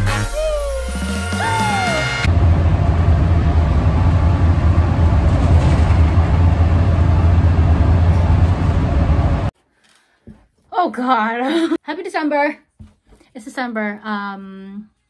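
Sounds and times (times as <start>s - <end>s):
bus engine drone: 2.0s - 9.5s
road noise: 2.3s - 9.5s.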